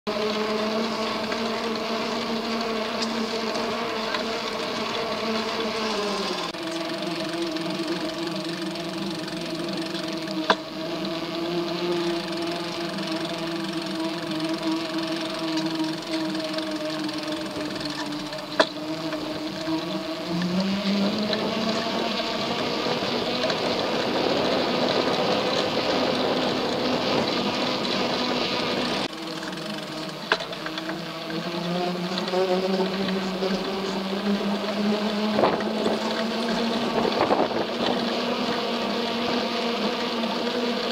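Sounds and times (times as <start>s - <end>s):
small motor humming: 0.1s - 40.9s.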